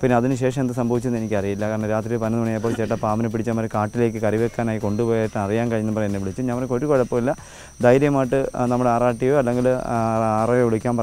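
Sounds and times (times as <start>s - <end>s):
high-pitched insect drone: 0.0s - 11.0s
man talking: 0.0s - 11.0s.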